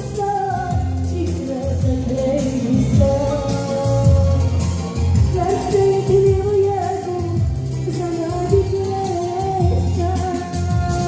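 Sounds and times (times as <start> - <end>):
backing track with heavy bass: 0.0 - 11.0
woman singing into a microphone: 0.0 - 11.0.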